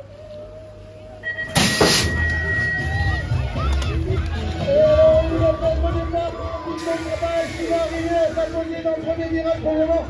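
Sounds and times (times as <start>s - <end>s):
bikes rumbling: 0.0s - 10.0s
metal gate slamming: 1.2s - 2.8s
electronic start tone: 1.2s - 3.0s
crowd shouting: 2.1s - 10.0s.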